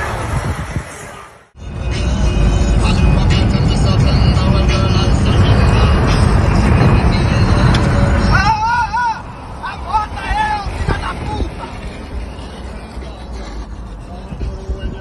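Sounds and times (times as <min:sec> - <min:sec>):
car road and wind rumble: 0:00.0 - 0:15.0.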